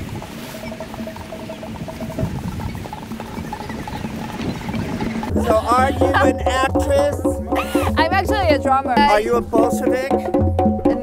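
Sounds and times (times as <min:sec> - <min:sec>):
hand drums played quickly: 0:00.0 - 0:11.0.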